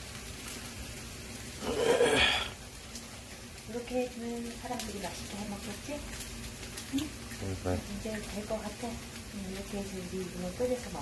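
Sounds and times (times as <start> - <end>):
pancakes sizzling in oil: 0.0 - 11.0.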